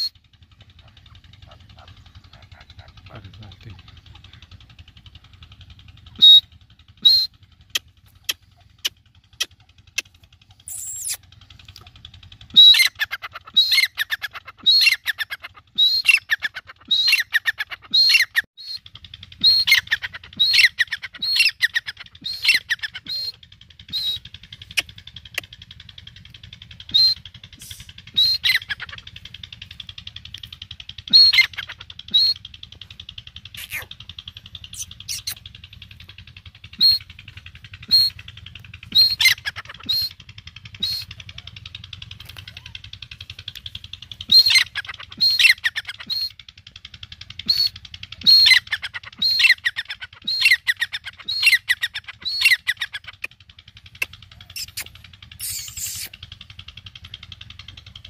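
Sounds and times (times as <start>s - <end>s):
francolin calling: 0.0s - 4.5s, 6.0s - 11.2s, 19.4s - 25.5s, 26.8s - 32.9s, 33.5s - 35.5s, 36.6s - 41.6s, 44.2s - 46.4s, 47.4s - 53.3s.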